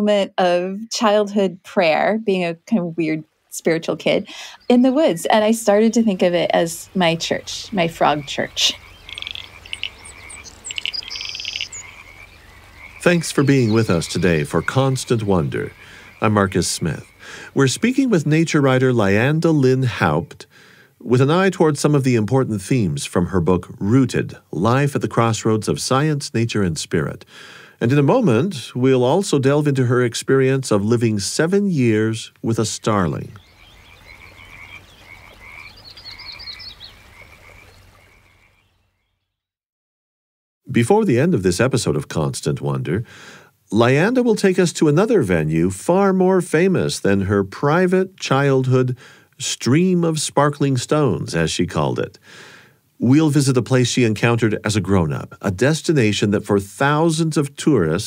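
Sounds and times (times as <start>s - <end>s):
frogs trilling: 4.6s - 18.5s, 33.3s - 39.3s
quick high chirps: 9.0s - 12.0s.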